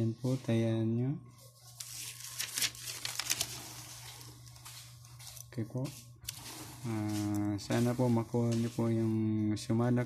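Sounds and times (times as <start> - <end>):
notebook pages rustling: 1.4 - 9.2.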